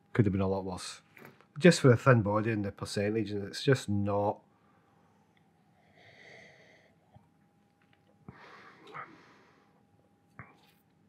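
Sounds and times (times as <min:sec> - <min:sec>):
soft breathy exhale: 0:05.7 - 0:07.1, 0:08.3 - 0:09.8.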